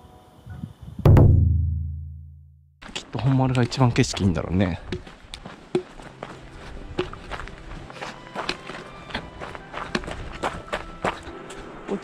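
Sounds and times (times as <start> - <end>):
fast footsteps on gravel: 2.8 - 12.0.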